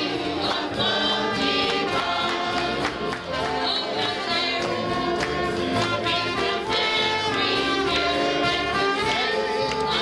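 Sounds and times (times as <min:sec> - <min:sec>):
gospel singing in harmony: 0:00.0 - 0:10.0.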